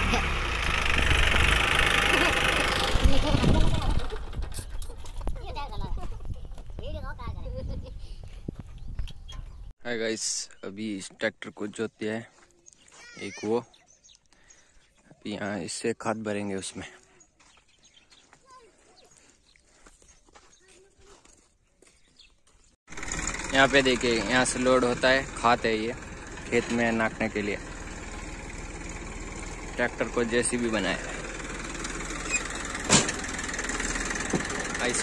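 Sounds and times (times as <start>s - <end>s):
tractor engine idling: 0.0s - 6.4s, 22.9s - 35.0s.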